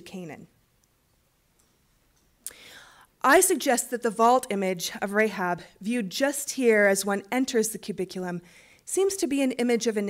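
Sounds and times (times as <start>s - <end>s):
woman breathing in: 2.4s - 3.2s, 8.4s - 8.8s.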